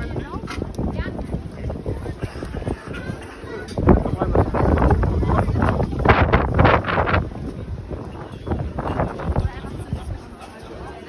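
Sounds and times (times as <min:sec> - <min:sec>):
crowd chatter: 0:00.0 - 0:11.0
wind rumbling on microphone: 0:00.0 - 0:11.0.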